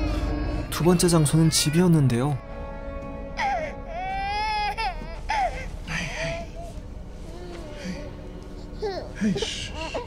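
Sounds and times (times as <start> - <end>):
background music drone: 0.0 - 10.0
baby crying: 3.4 - 10.0.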